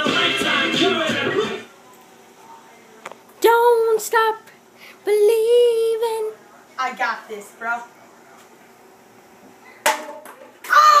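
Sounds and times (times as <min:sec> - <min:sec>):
loud high-pitched yell: 0:10.6 - 0:11.0.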